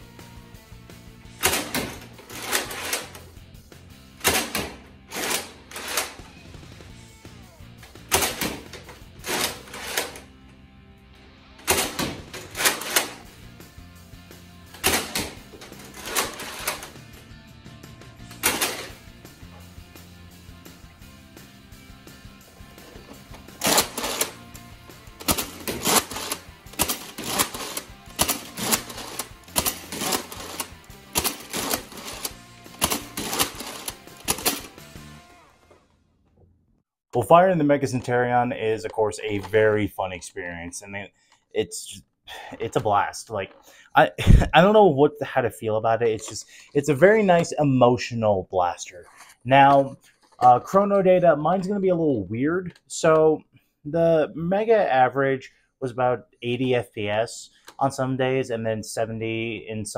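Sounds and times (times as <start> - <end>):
background music low notes: 0.0 - 59.9
toy blaster bolt clacks and shots: 25.2 - 34.8.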